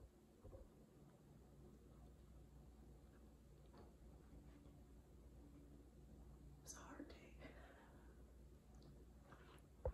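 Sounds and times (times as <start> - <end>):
person whispering: 6.6 - 7.5.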